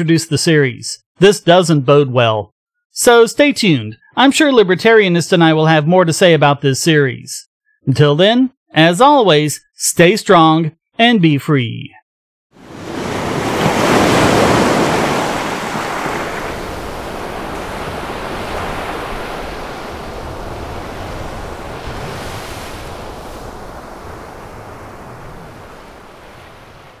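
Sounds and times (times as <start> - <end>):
rushing surf-like noise: 12.6 - 27.0.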